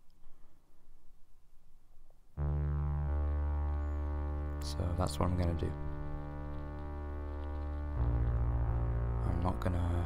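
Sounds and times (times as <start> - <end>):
low sustained synthesizer chord: 2.4 - 10.0.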